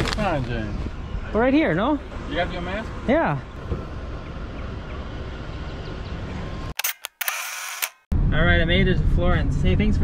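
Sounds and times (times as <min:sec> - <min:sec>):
outdoor background noise: 0:00.0 - 0:10.0
camera shutter clicks and whirr: 0:06.7 - 0:08.1.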